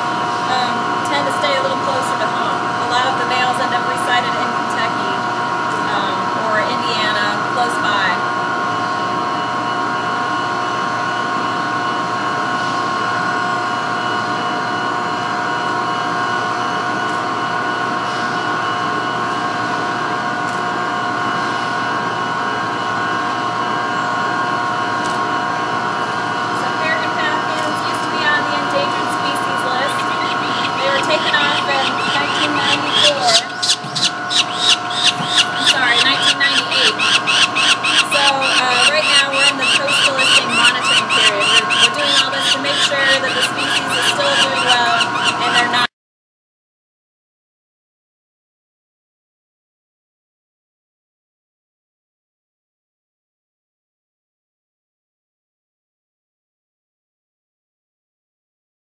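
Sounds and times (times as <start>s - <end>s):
power plant machinery hum: 0.0s - 45.9s.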